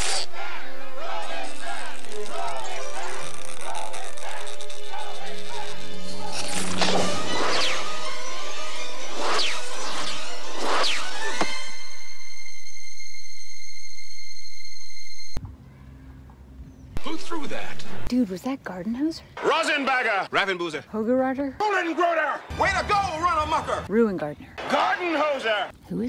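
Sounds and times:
film music: 0:00.0 - 0:15.4, 0:21.6 - 0:25.7.

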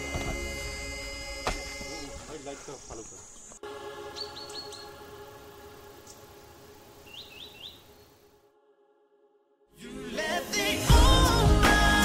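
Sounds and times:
small birds chirping: 0:01.7 - 0:05.1, 0:06.0 - 0:08.3.

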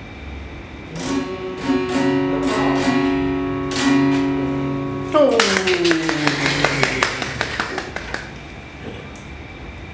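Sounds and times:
people clapping: 0:05.3 - 0:08.5.

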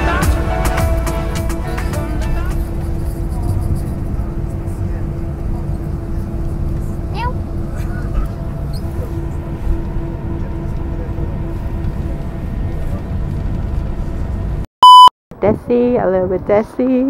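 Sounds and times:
airliner cabin rumble: 0:01.6 - 0:14.7.

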